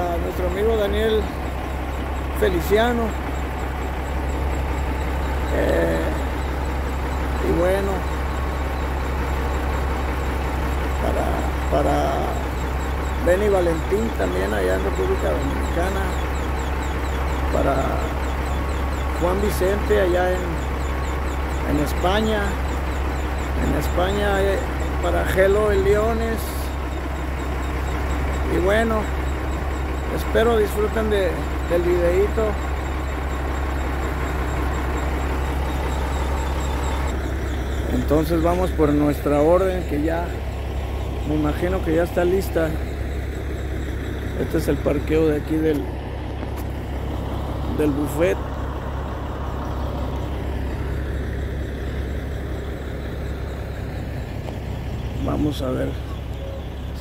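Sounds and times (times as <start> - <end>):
diesel truck engine idling: 0.0 - 57.0.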